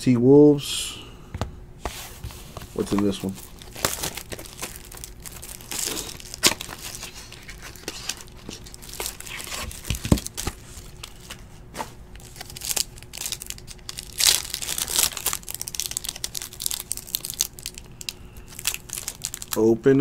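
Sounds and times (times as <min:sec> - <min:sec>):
plastic wrapping crinkling: 0:02.2 - 0:11.5, 0:12.1 - 0:19.7.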